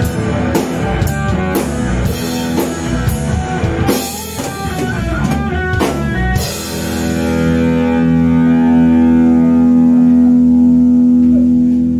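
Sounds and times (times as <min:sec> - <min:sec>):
electric guitar chord ringing: 0:00.0 - 0:11.9.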